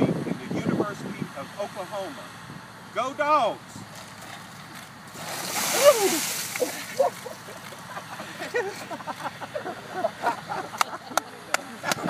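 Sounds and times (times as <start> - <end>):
water splashing over man: 5.1 - 7.4
excited voices: 5.6 - 12.0
man crying out: 5.7 - 7.2
hand claps: 10.8 - 12.0.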